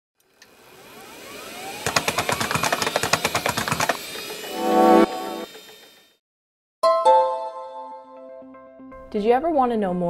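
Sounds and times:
rapid mechanical clicks: 1.8s - 4.5s
rising whoosh with gliding tones: 4.5s - 5.7s.

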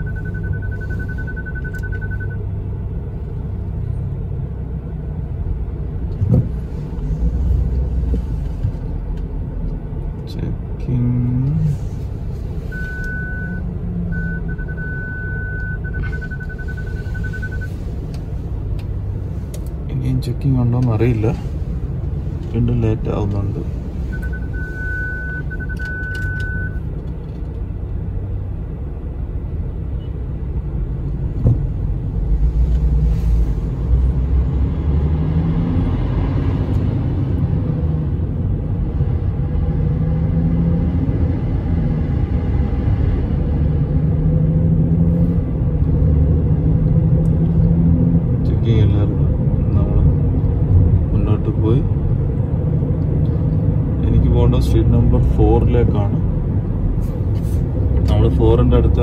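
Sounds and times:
high electronic beep: 0.0s - 2.4s, 12.7s - 17.8s, 24.1s - 26.8s
car rumble from inside cabin: 0.0s - 59.0s
car cabin rumble: 6.0s - 28.0s, 30.0s - 34.2s.

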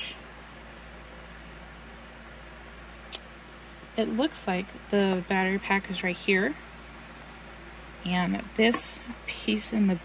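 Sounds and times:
faint hiss and low hum: 0.0s - 10.0s.

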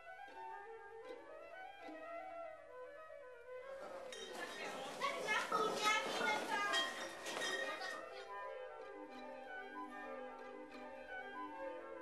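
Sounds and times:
children shouting and chattering: 3.8s - 8.4s.

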